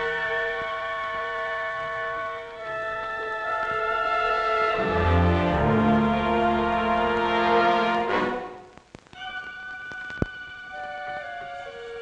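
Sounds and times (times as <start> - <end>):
low orchestral notes: 0.0 - 9.8
orchestral strings sustained chords: 3.2 - 8.7.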